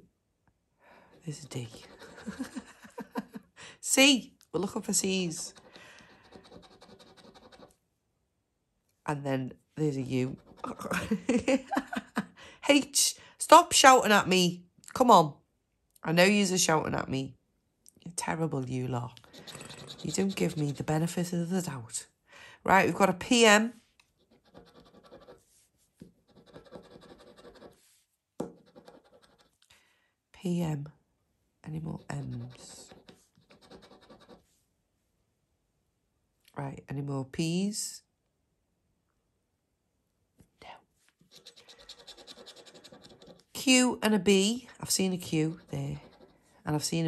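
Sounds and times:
scratching a scratch card: 1.1 - 2.5, 5.2 - 7.8, 10.3 - 10.8, 19.2 - 20.9, 24.0 - 29.6, 32.0 - 34.5, 41.3 - 43.6, 45.0 - 46.4.

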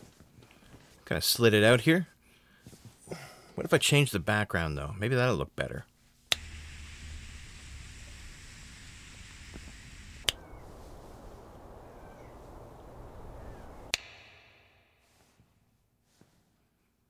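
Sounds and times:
low traffic rumble: 6.4 - 14.0
faint bird chirps: 10.2 - 13.9
finger snaps: 13.9 - 14.5.

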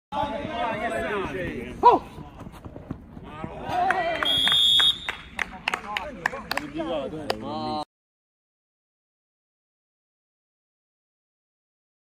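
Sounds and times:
high-pitched whistle: 4.2 - 5.2.

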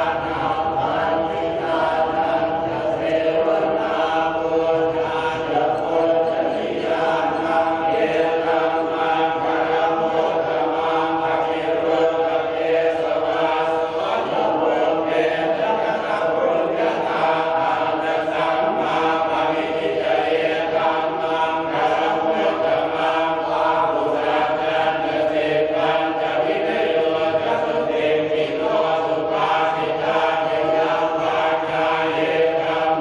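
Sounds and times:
group of men chanting: 0.0 - 33.0.

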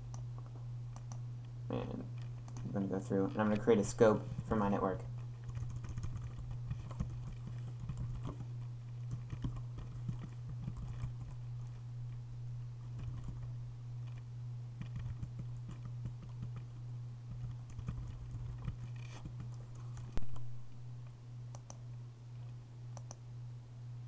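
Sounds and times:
steady low hum: 0.0 - 24.0
typing on keyboard: 5.4 - 11.4, 13.0 - 13.5, 14.8 - 16.6, 17.3 - 19.6.

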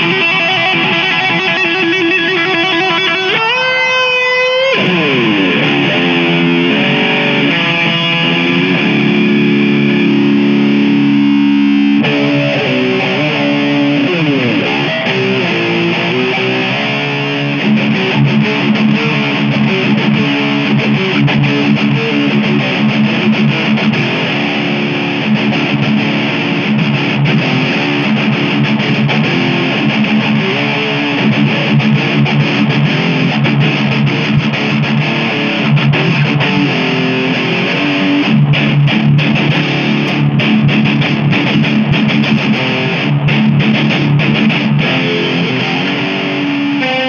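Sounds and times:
electric guitar playing lead: 0.0 - 47.0.

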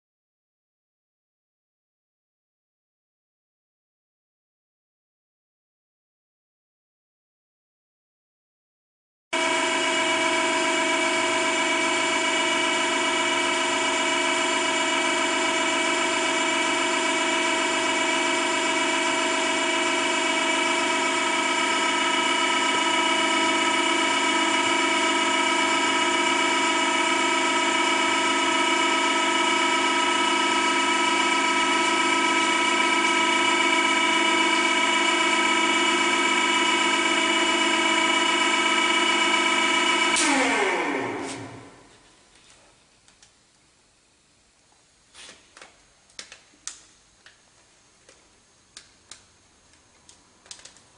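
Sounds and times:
hydraulic pump motor whine: 9.4 - 42.7.

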